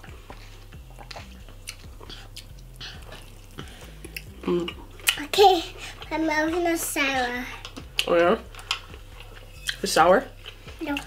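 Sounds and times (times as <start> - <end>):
person chewing fried food: 0.0 - 6.1, 7.6 - 11.0
faint low hum: 0.0 - 11.0.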